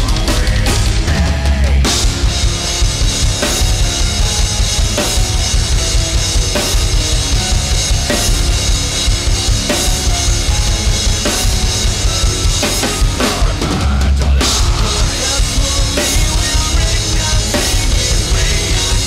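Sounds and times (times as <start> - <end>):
bass drum beats: 0.0 - 19.0
heavy metal distorted guitars: 0.0 - 19.0.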